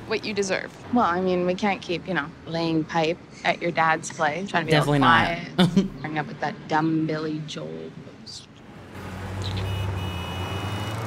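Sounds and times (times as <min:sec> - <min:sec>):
road noise: 0:00.0 - 0:11.0
vehicle engine humming: 0:08.6 - 0:11.0.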